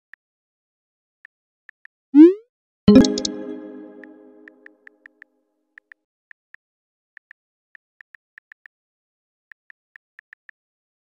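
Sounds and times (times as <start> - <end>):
bright chime-like chord: 2.9 - 4.5.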